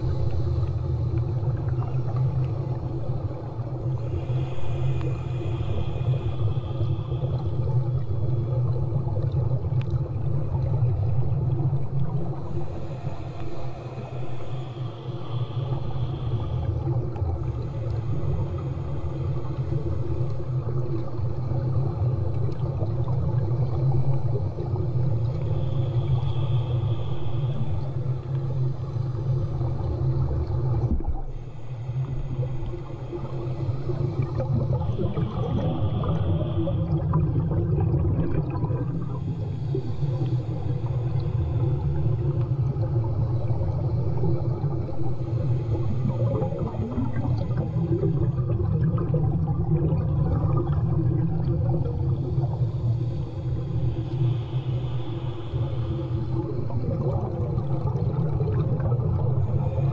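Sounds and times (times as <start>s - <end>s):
low underwater rumble: 0.0s - 59.9s.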